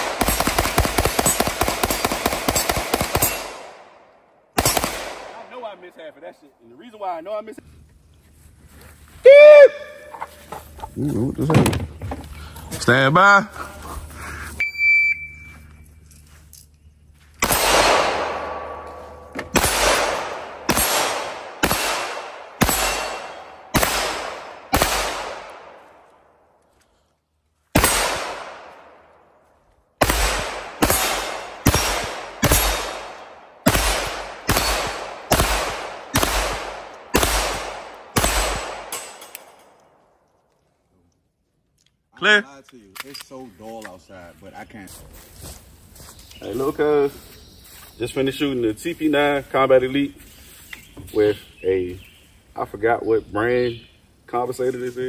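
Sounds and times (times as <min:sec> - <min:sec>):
pistol gunshots: 0:00.0 - 0:05.7, 0:17.4 - 0:25.9, 0:27.7 - 0:29.1, 0:30.0 - 0:39.8
shot timer beep: 0:14.6 - 0:15.6.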